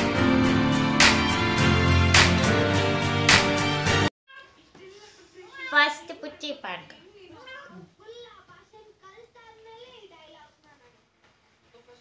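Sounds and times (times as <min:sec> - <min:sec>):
cat meowing: 0:07.4 - 0:07.9.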